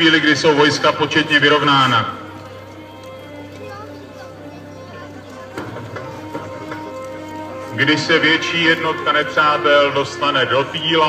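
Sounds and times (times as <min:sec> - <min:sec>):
crowd voices: 0:00.0 - 0:11.0
droning background music: 0:00.0 - 0:11.0.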